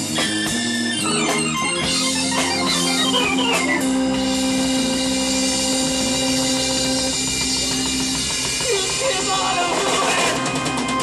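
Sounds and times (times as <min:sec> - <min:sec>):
live band playing: 0:00.0 - 0:11.0
sustained organ note: 0:01.0 - 0:08.2.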